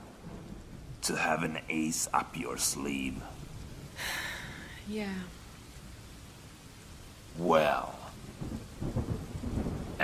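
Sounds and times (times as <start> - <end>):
rain falling: 0.0 - 10.0
rolling rumble of thunder: 0.0 - 10.0.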